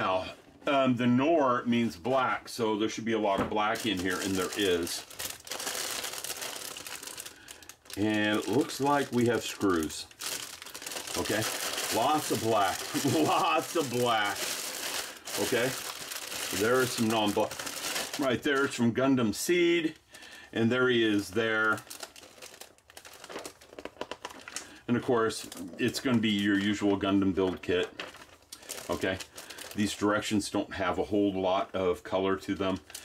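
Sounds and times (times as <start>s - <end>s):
paper rustling: 3.6s - 18.8s, 21.0s - 24.6s, 25.4s - 29.9s
plastic bags crinkling: 3.6s - 18.9s, 19.6s - 30.3s, 32.5s - 33.0s.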